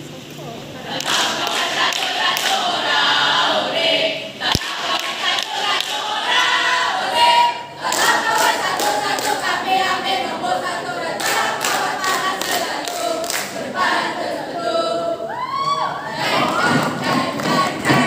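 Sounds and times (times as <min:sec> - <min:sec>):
students singing together: 0:00.8 - 0:18.0.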